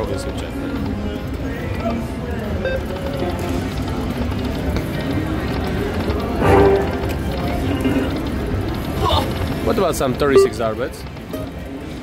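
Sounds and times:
casino background noise: 0.0s - 12.0s
slot machine electronic sounds: 2.5s - 11.6s.

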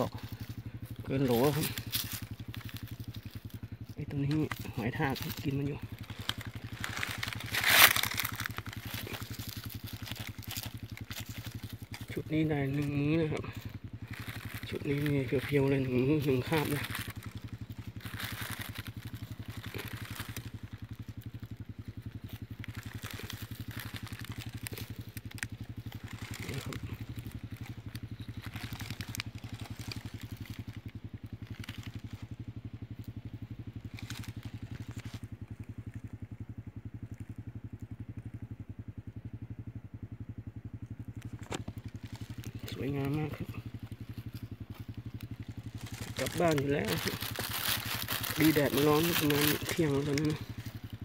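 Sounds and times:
dry leaves crackling: 0.0s - 51.0s
small engine idling: 0.0s - 51.0s.

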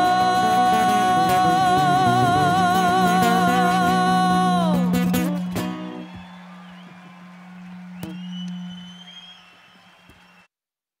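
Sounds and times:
high plucked guitar note: 0.0s - 6.0s
acoustic guitar chord ringing: 0.0s - 6.8s.

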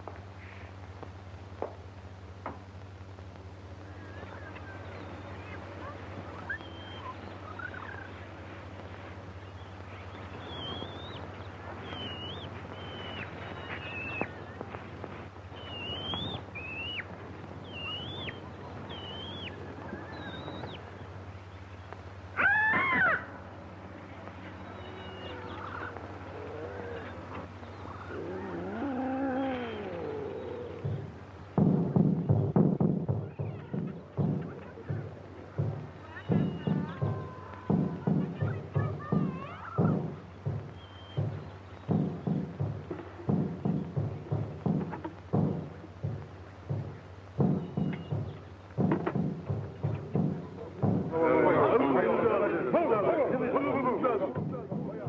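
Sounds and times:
chirping bird calls: 3.8s - 52.1s
loud animal cry: 22.4s - 23.3s, 24.6s - 31.0s
wailing cry: 22.4s - 23.4s, 24.6s - 31.0s, 36.0s - 40.1s
drums beating quick rhythm: 29.9s - 55.0s.

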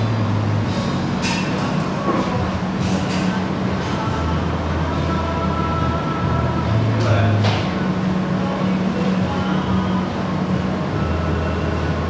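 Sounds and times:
room noise: 0.0s - 12.0s
steady low hum: 0.0s - 12.0s.

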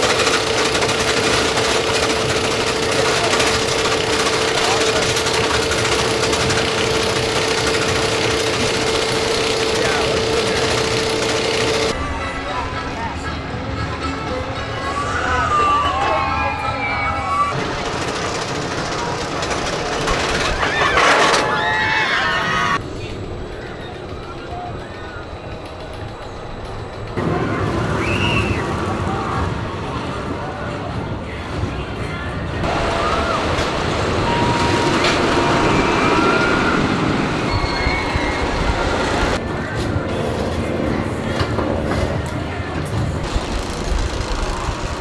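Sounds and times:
roller coaster train rumbling: 0.0s - 45.0s
riders screaming: 20.3s - 22.8s, 27.4s - 29.5s, 32.7s - 39.4s.

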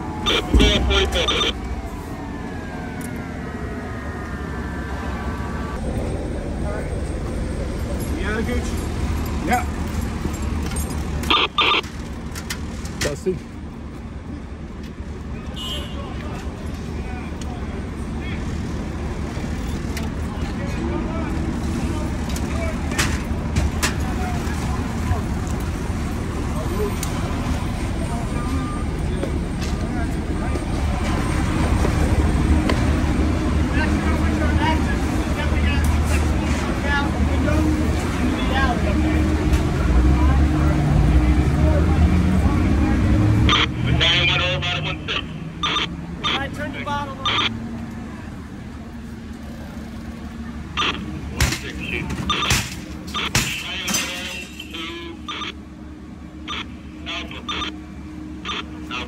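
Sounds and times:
voices: 0.0s - 10.2s, 11.1s - 12.0s, 15.2s - 59.0s
diesel engines rumbling: 0.0s - 59.0s.

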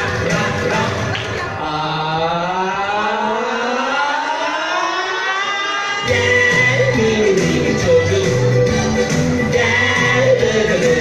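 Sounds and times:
children's dance-pop song: 0.0s - 11.0s
rising siren-like synth sweep: 1.9s - 6.2s.

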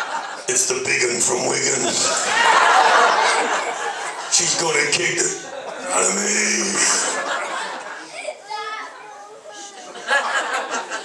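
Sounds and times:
audience members talking: 0.0s - 11.0s
amplified speech: 0.5s - 7.8s.

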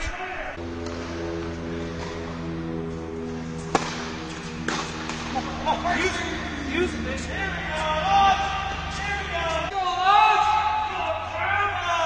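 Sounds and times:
tennis ball struck by racket: 3.6s - 5.4s.

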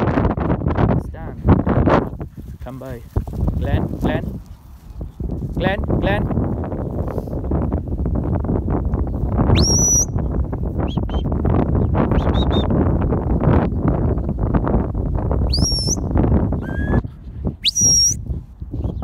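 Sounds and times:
shepherd's whistles: 9.5s - 11.3s, 12.1s - 12.8s, 15.5s - 17.0s, 17.6s - 18.2s.

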